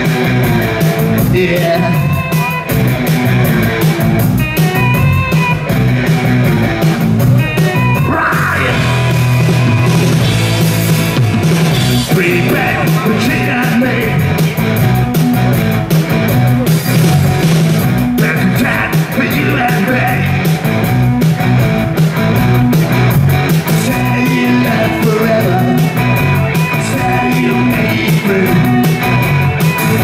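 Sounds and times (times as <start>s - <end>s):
rock band playing: 0.0s - 30.0s
person singing: 1.3s - 2.6s, 7.7s - 9.1s, 12.1s - 14.6s, 18.2s - 20.5s, 23.6s - 30.0s.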